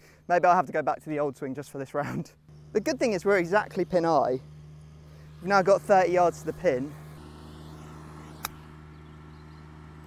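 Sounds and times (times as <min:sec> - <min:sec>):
steady low hum: 0:00.0 - 0:10.0
golf club striking ball: 0:08.4 - 0:08.7.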